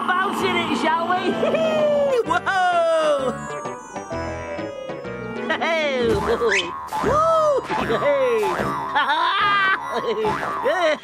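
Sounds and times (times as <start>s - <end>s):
cartoon spring boing: 6.0s - 11.0s.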